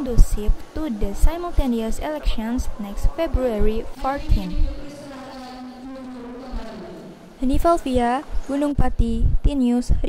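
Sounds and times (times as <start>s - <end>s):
voices droning in unison: 0.0s - 8.7s.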